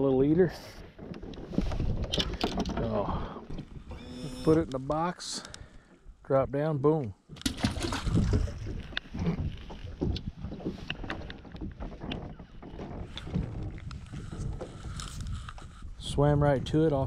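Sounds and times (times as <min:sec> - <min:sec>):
wind rumbling on microphone: 0:00.0 - 0:04.9, 0:07.6 - 0:17.0
knocks and rustles on boat deck: 0:00.6 - 0:03.9, 0:07.4 - 0:15.8.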